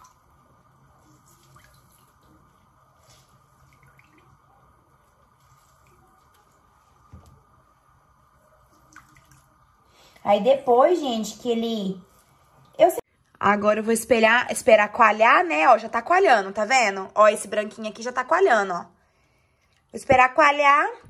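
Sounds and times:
faint liquid drips: 0.0s - 10.4s, 19.0s - 20.1s
low steady hum: 0.0s - 21.0s.

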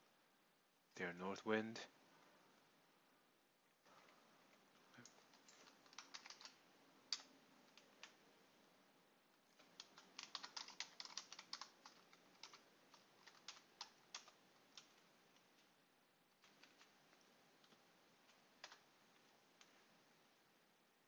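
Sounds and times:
faint keyboard typing: 3.9s - 8.6s, 9.4s - 20.6s.

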